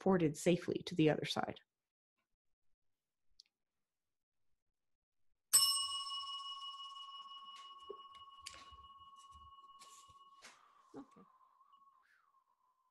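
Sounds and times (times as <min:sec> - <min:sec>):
small metal bell ringing: 0:05.6 - 0:10.7.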